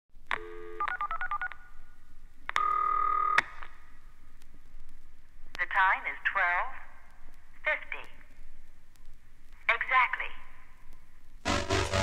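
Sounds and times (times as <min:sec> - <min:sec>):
steady telephone tone: 0:00.3 - 0:02.0, 0:02.6 - 0:03.4.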